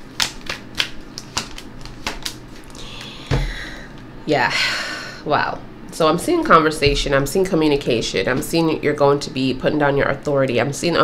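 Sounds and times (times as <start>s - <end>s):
cards being shuffled: 0.0s - 3.1s.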